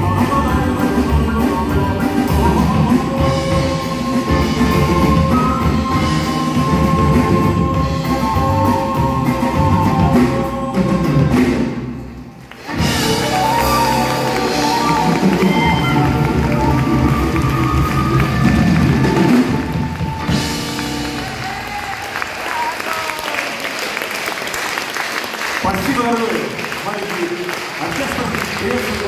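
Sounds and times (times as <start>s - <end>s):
live band playing: 0.0s - 24.5s
audience applauding: 12.4s - 29.0s.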